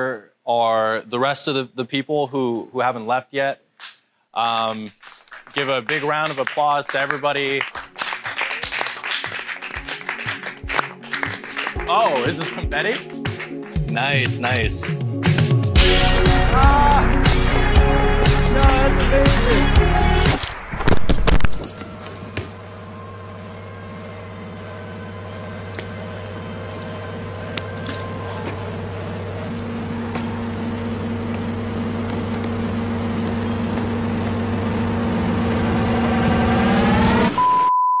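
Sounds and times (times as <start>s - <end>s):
low droning chord: 15.8s - 20.3s, 22.2s - 37.4s
steady test tone: 23.0s - 37.7s.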